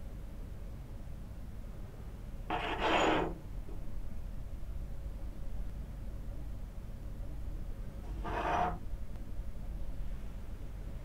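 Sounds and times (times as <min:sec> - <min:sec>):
metal tube scraping across mat: 0:02.5 - 0:03.4, 0:08.1 - 0:08.8.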